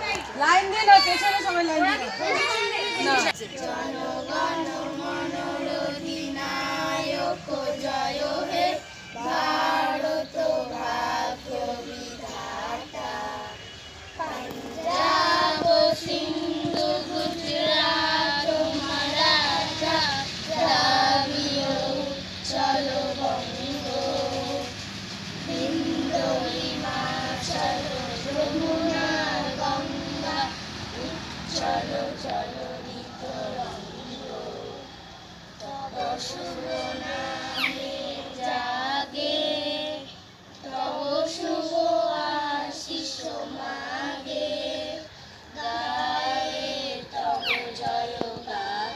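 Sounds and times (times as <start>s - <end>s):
children singing in unison: 2.5s - 48.9s.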